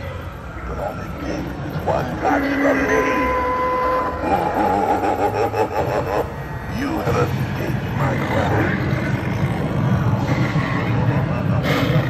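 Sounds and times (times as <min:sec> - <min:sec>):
distorted electronic spooky voice: 0:00.0 - 0:12.0
steady low hum: 0:00.0 - 0:12.0.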